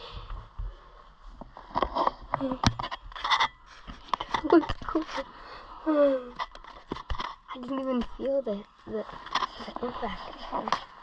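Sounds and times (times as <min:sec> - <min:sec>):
breathing: 0:00.0 - 0:01.2, 0:05.2 - 0:06.1
clicks knocks and scrapes of gear: 0:06.4 - 0:08.2.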